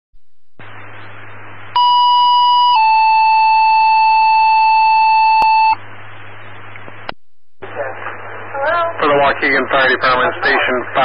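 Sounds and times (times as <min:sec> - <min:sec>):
radio hiss: 0:00.6 - 0:01.7, 0:05.8 - 0:11.0
two-tone dispatch tones: 0:01.8 - 0:05.8.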